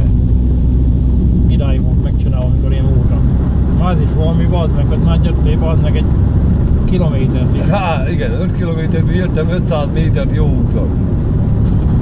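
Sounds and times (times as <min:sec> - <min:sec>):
car engine and road hum: 0:00.0 - 0:12.0.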